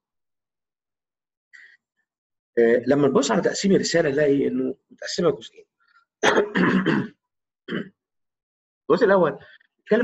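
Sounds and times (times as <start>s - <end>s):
man speaking: 2.6s - 5.6s, 8.9s - 10.0s
man clearing his throat: 6.2s - 8.0s.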